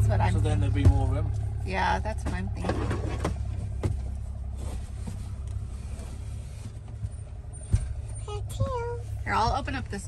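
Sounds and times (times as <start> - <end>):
vehicle idling rumble: 0.0 - 10.0.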